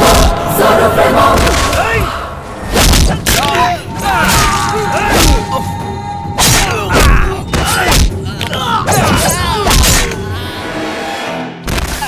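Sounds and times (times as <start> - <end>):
punch sound effects: 2.6 - 3.4.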